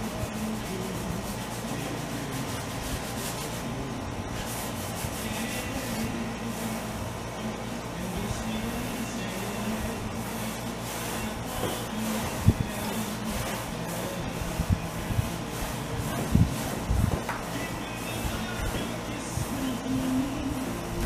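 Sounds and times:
paintbrush scrubbing on canvas: 0.0s - 7.0s, 8.5s - 21.0s.

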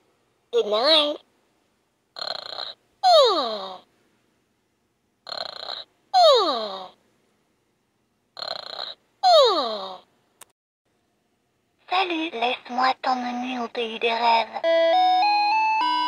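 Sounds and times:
toy cartoon snoring: 2.2s - 3.9s, 5.2s - 7.0s, 8.4s - 10.1s.

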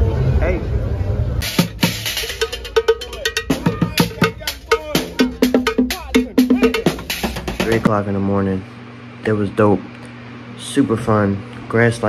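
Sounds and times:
bucket drumming with sticks: 1.4s - 7.9s.

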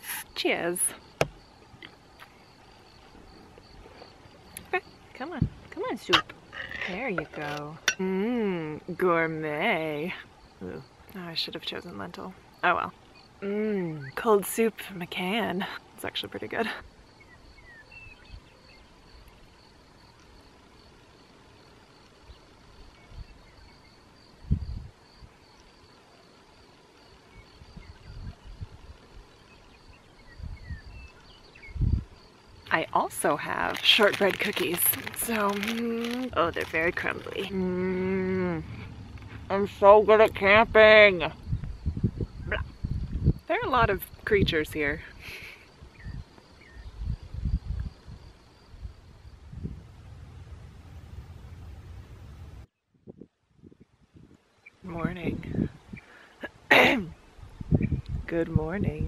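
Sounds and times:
high-pitched insect chorus: 0.0s - 52.6s
faint bird chirps: 12.6s - 14.6s, 17.1s - 20.2s, 22.2s - 26.3s, 27.2s - 32.7s, 45.4s - 47.8s
low microphone rumbles: 24.4s - 25.0s, 27.5s - 45.1s, 45.9s - 56.0s, 57.4s - 59.0s.

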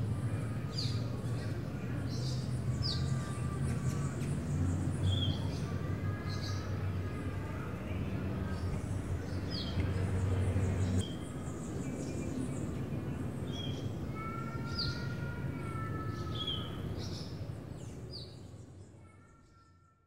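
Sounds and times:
outdoor background rumble: 0.0s - 18.9s.

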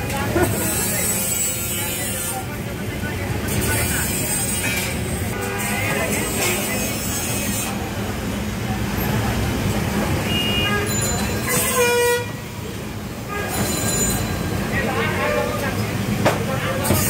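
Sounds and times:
traffic: 0.0s - 17.0s
voices: 0.0s - 17.0s
vehicle horn toot: 10.2s - 12.4s.

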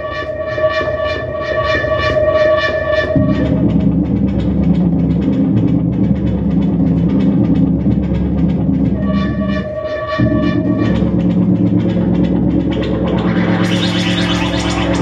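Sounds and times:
synthesizer arpeggio: 8.8s - 15.0s.

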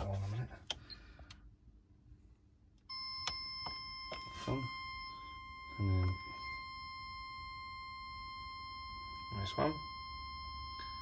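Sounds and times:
tester steady beep: 2.9s - 11.0s.

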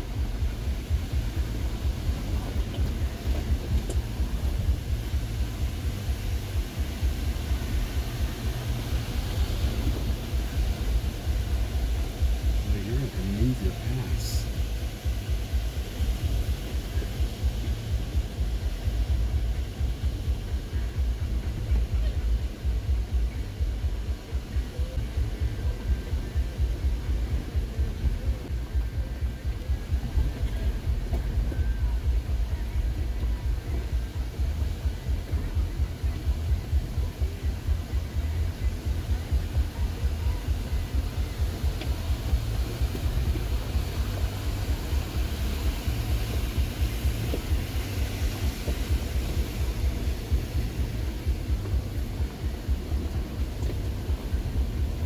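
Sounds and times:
truck engine rumbling: 0.0s - 55.0s.

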